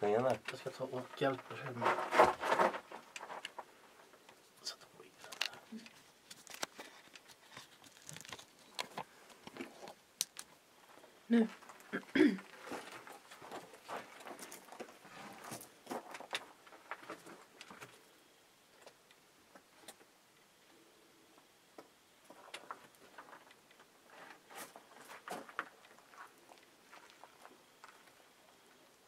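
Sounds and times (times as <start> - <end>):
faint clicks knocks and rustles: 5.1 - 11.0.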